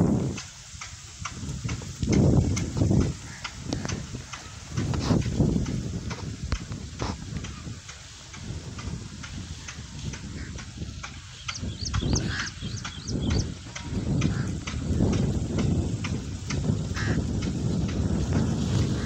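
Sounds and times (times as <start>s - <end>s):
wind rumble on microphone: 0.0s - 19.0s
dry stalks rustling and crackling: 1.0s - 19.0s.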